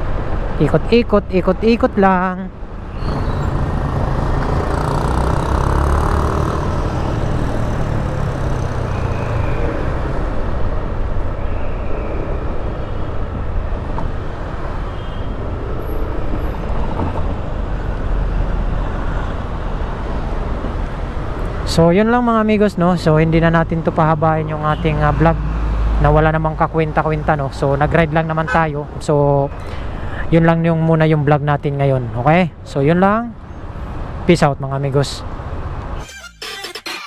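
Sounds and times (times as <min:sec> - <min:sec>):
road and wind noise: 0:00.0 - 0:36.1.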